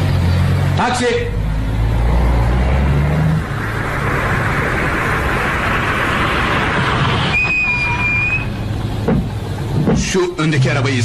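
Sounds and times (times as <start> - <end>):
brakes squealing: 0.0 - 11.0
car running: 0.0 - 11.0
traffic noise: 0.0 - 11.0.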